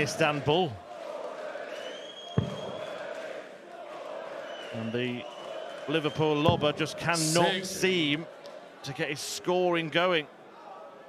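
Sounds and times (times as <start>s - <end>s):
crowd murmur: 7.0s - 8.5s.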